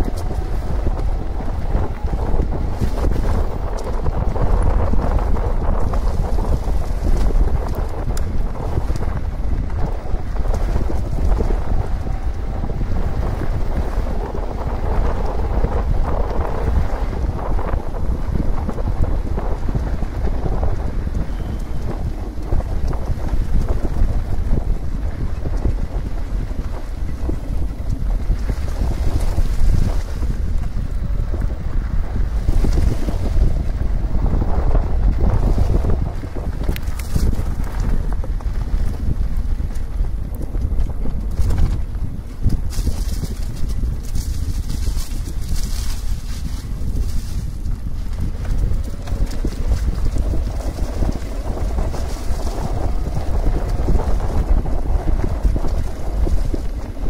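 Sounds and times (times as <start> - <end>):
tyres rolling over gravel: 0.0 - 57.0
wind buffeting microphone: 0.0 - 57.0.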